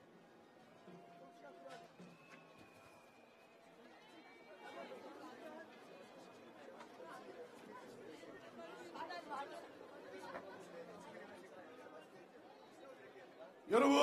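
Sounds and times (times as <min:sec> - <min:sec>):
crowd chatter: 0:00.0 - 0:14.0.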